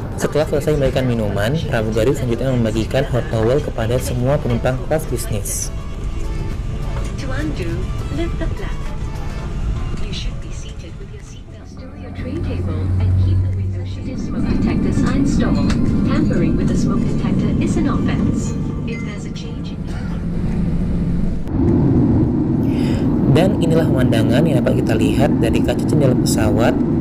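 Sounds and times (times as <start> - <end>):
aircraft cabin engine hum: 0.0 - 27.0
people talking: 0.1 - 5.7, 7.1 - 8.8, 9.9 - 20.2, 22.7 - 26.8.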